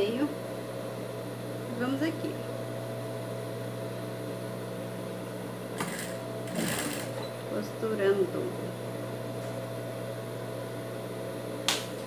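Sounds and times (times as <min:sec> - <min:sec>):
sewing machine stitching: 0:05.8 - 0:07.2
sewing machine motor humming: 0:05.8 - 0:07.4.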